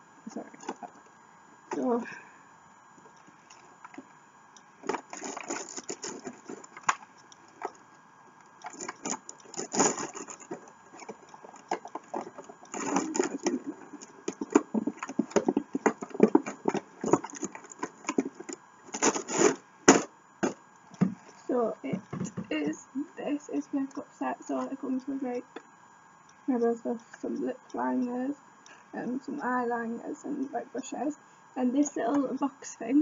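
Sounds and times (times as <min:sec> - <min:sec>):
packaging scraping and rustling: 0:04.8 - 0:07.0, 0:08.7 - 0:20.6.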